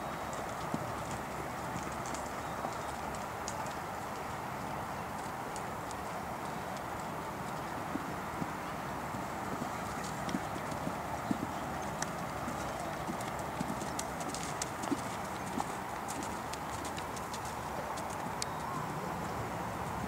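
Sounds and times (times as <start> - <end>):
steady background hiss: 0.0 - 20.0
horse hoofbeats on sand: 5.2 - 20.0.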